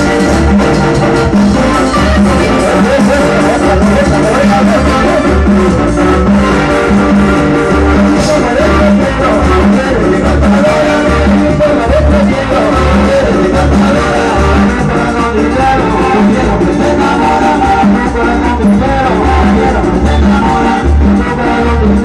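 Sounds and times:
latin band music from television: 0.0s - 22.0s
man singing: 0.0s - 22.0s.

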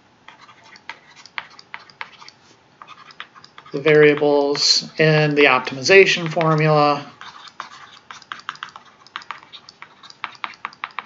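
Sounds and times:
stylus tapping on tablet screen: 5.6s - 11.0s.

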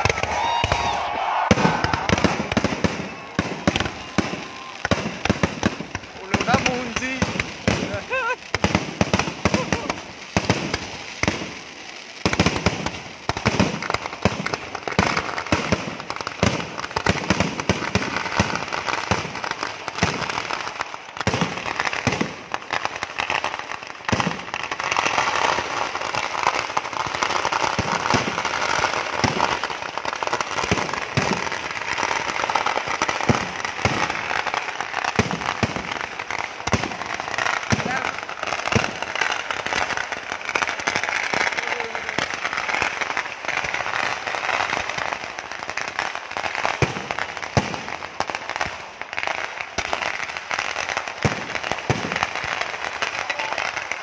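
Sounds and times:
firecracker bangs and crackling: 0.0s - 54.0s.

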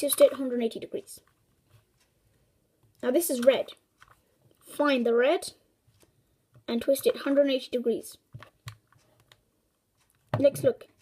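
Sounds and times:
rubik's cube clicking: 2.9s - 5.1s, 8.2s - 10.9s.

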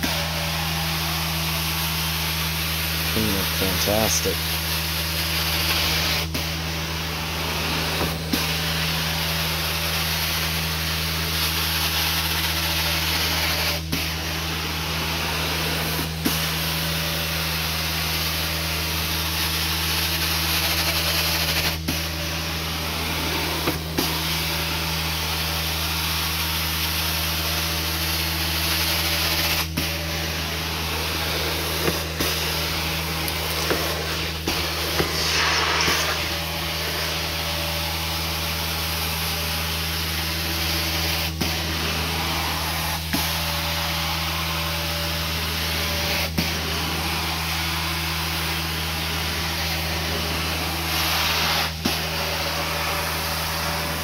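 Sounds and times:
vacuum suction of carpet wand: 0.0s - 54.0s
spray hissing: 30.3s - 36.8s.

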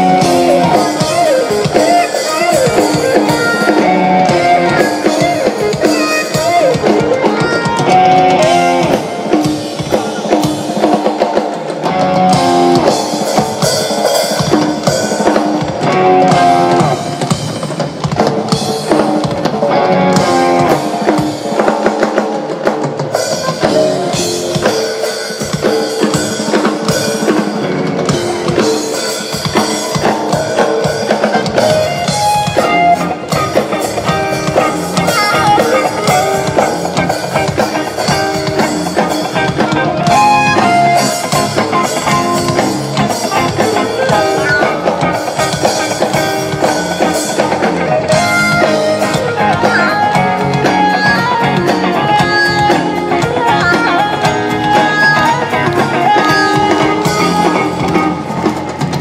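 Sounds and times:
drum kit: 0.0s - 59.0s
electric guitars: 0.0s - 59.0s
keyboard: 0.0s - 59.0s.

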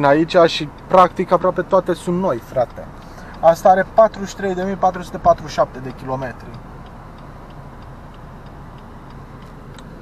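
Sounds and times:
car turn signal ticking: 0.0s - 10.0s
diesel engine hum: 0.0s - 10.0s.

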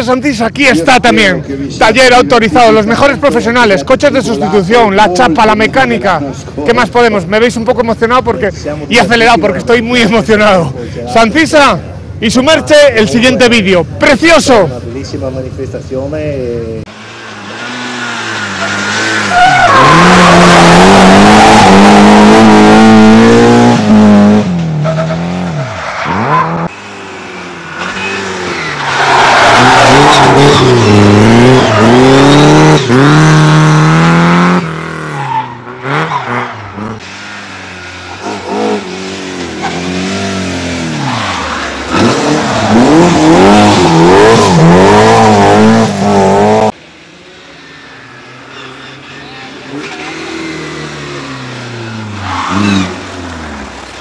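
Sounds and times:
rally cars revving past: 17.0s - 46.8s, 49.6s - 54.0s.

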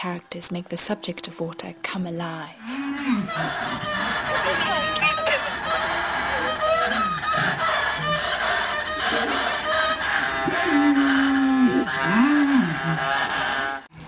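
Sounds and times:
man imitating chickens: 2.7s - 13.8s
large crowd noise: 3.4s - 12.8s.

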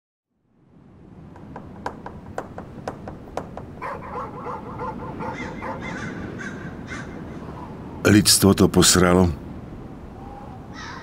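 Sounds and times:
crows cawing: 2.8s - 7.8s, 10.2s - 11.0s.

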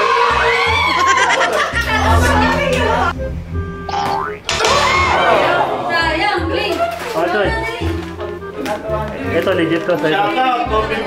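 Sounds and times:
rising cartoon boing: 1.7s - 5.7s
meme voice clip with swooping pitch: 1.8s - 3.2s.

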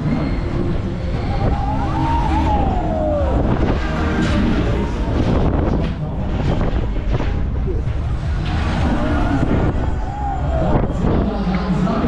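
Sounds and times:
whine rising and falling in pitch: 0.0s - 6.9s, 7.5s - 12.0s
low rumble: 0.0s - 12.0s.

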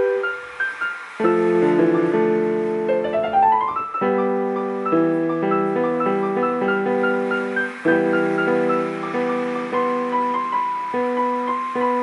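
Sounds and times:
slow solo piano melody: 0.0s - 12.0s.

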